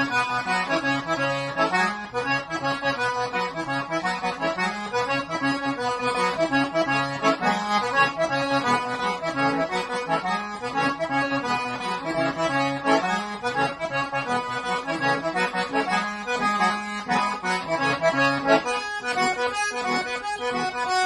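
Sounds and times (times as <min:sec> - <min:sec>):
button accordion playing zydeco: 0:00.0 - 0:21.0.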